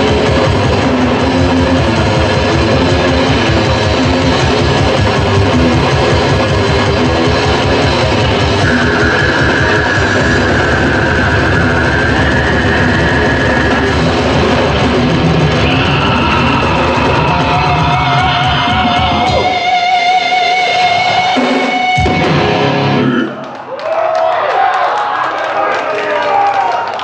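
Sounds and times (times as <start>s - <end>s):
death metal band playing: 0.0s - 23.6s
held high guitar note: 8.6s - 14.8s.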